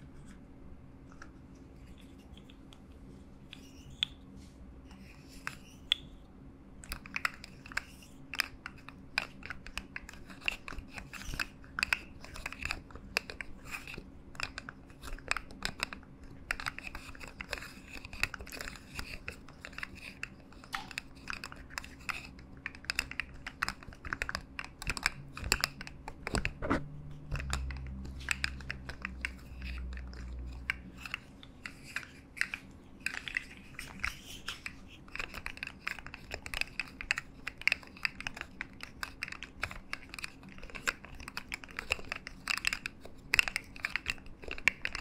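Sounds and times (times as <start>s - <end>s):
low steady hum: 0.0s - 45.0s
plastic fidget toy clicking: 6.9s - 26.6s, 27.3s - 45.0s.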